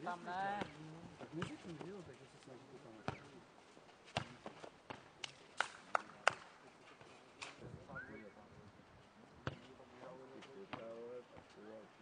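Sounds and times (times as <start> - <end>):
ball kicked and bouncing on clay: 0.4 - 2.0, 3.0 - 3.4, 4.0 - 6.5, 9.4 - 9.7, 10.5 - 11.5.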